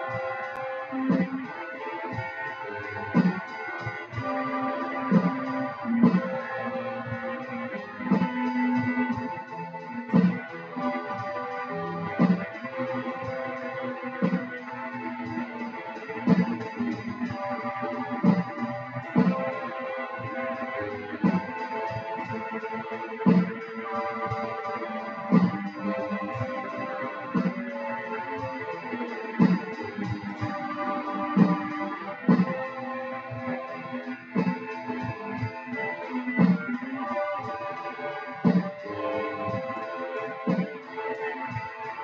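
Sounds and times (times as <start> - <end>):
steady beat: 0.0 - 42.0.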